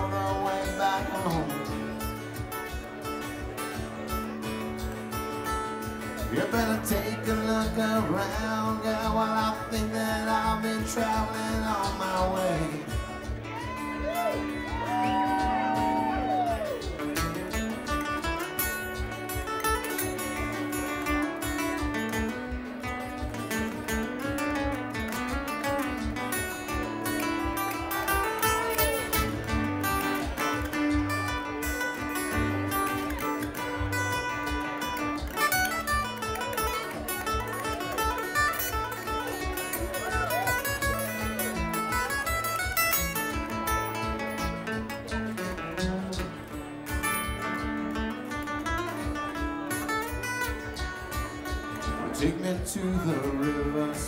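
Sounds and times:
acoustic guitars picking and strumming: 0.0 - 54.0
one-string bass beat: 0.0 - 54.0.

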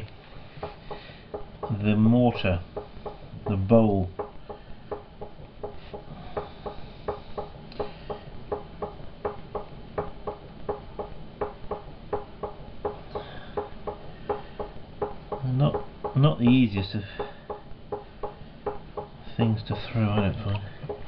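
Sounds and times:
regular clicking: 0.0 - 21.0.

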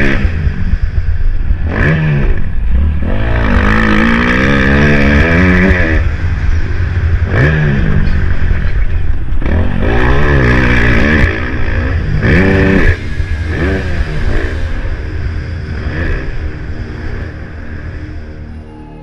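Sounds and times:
wind rumble on microphone: 0.0 - 18.4
motocross bike engine revving: 0.0 - 18.5.

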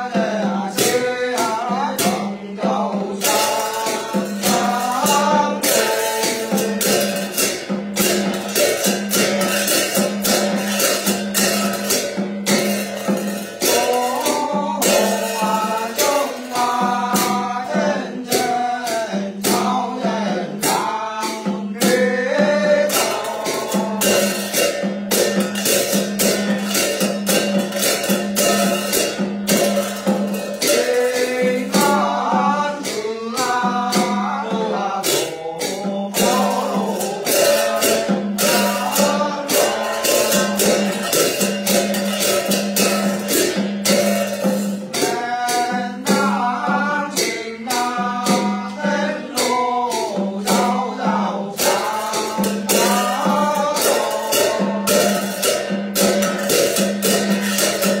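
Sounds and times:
person singing a chant: 0.0 - 28.0, 28.9 - 58.0.

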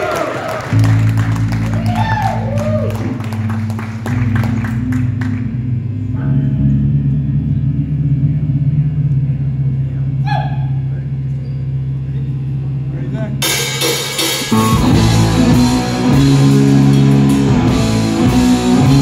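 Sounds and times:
crowd clapping and cheering: 0.0 - 6.0
amplified guitar drone: 0.6 - 19.0.

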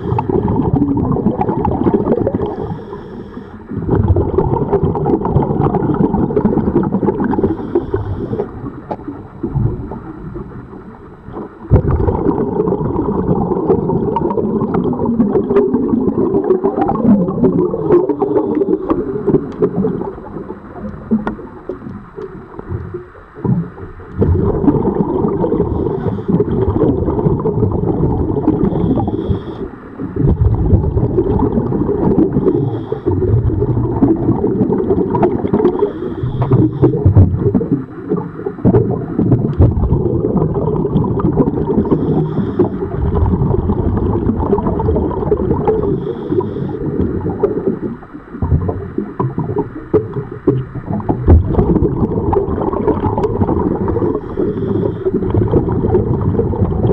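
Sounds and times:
gurgling exhaled bubbles: 0.0 - 56.9
regulator inhalation hiss: 2.4 - 3.7, 7.4 - 8.5, 25.6 - 26.4, 28.6 - 29.9, 32.3 - 33.2, 35.7 - 37.0, 41.8 - 42.8, 45.8 - 46.9, 54.0 - 55.2.

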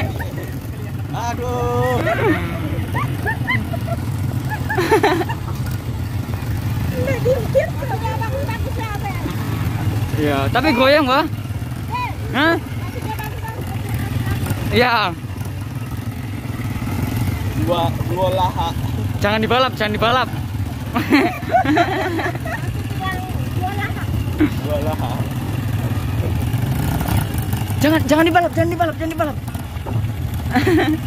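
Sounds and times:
low engine hum: 0.0 - 31.0.

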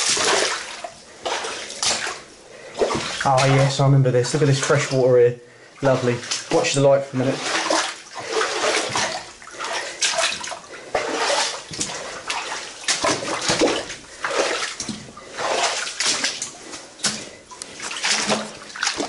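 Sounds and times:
footsteps splashing in shallow water: 0.0 - 5.1, 5.8 - 19.0.

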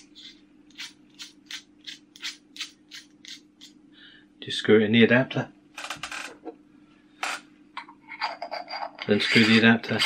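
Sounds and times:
metal threads scraping: 7.9 - 10.0.

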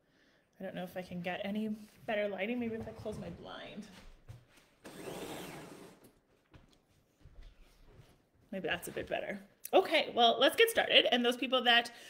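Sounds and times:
window blind being pulled closed: 4.8 - 6.2.

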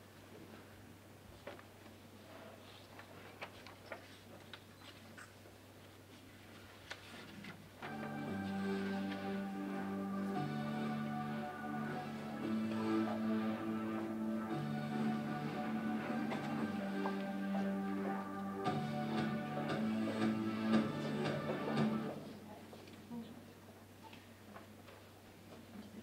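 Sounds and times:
choir singing sustained chords: 7.8 - 22.2.

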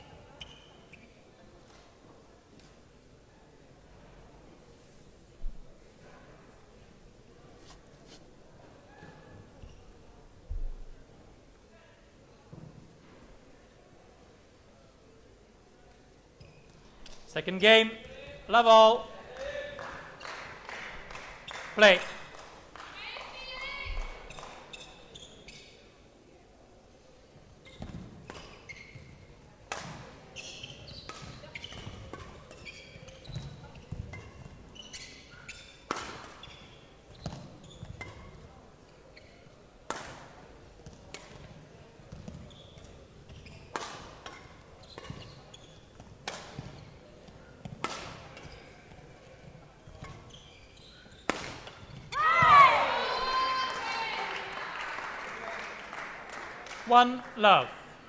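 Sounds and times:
rackets hitting shuttlecock: 29.7 - 34.6, 35.4 - 38.4, 42.1 - 49.1, 51.0 - 52.8.

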